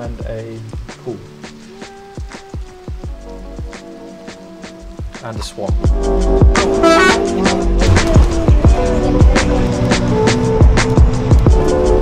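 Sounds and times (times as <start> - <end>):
deep kick drum: 7.8 - 9.5.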